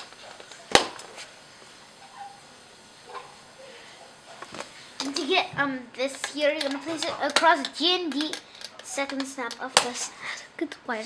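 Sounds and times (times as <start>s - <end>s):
plastic piece snapping onto studs: 6.2s - 10.0s.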